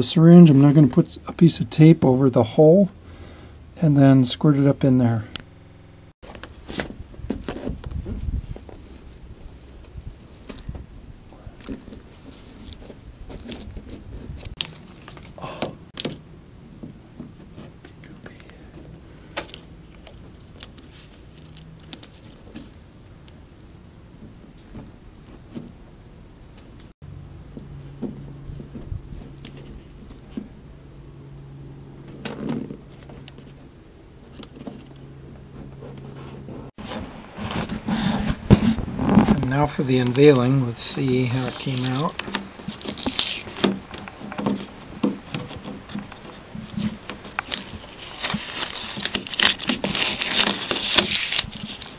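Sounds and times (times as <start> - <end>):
low steady hum: 0.0 - 51.9
gloved hands clicking and rustling: 17.7 - 23.4, 37.6 - 51.9.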